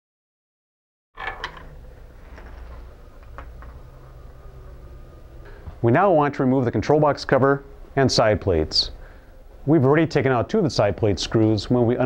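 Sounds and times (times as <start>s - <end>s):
low steady hum: 1.2s - 12.0s.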